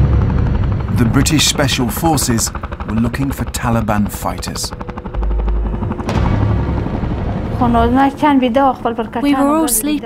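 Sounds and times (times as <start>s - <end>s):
helicopter rotor blades beating: 0.0s - 10.0s.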